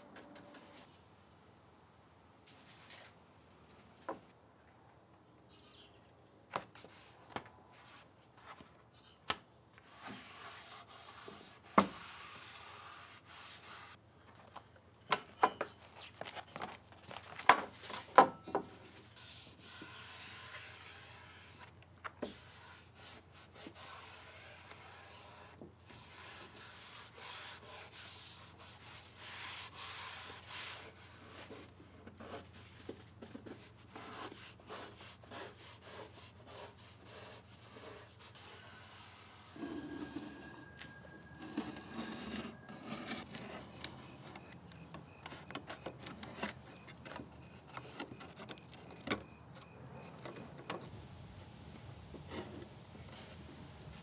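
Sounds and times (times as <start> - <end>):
hands rubbing paper on wood: 9.8 - 14.0, 19.2 - 40.0.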